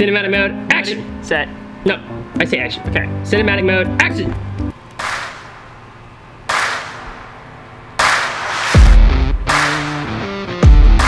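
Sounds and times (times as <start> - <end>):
sharp reverberant hits: 5.0 - 10.3.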